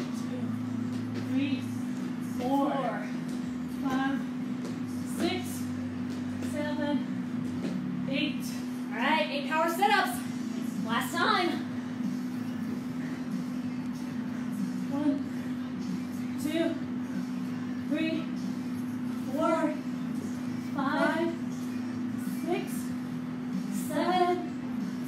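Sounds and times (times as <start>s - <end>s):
steady low hum: 0.0s - 25.0s.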